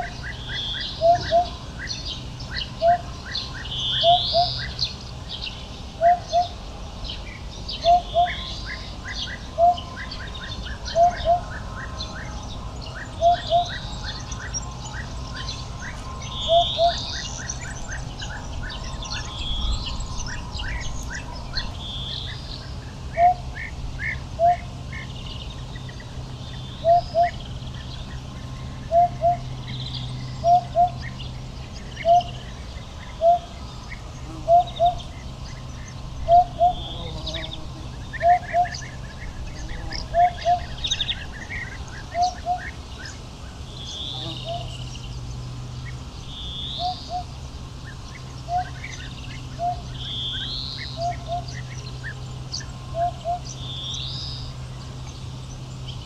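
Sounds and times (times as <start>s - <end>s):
hoopoe hooting song: 0.0s - 5.0s, 6.0s - 6.6s, 7.8s - 35.4s, 36.0s - 44.8s, 46.4s - 53.8s
small birds chirping: 0.0s - 56.0s.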